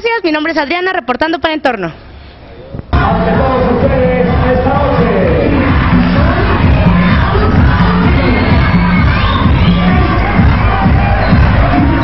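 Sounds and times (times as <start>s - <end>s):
loud music with steady beat: 2.9s - 12.0s
audience cheering and shouting: 3.0s - 12.0s.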